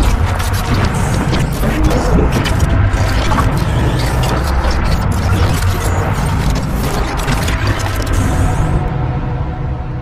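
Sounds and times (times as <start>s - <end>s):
mechanical noise: 0.0s - 9.0s.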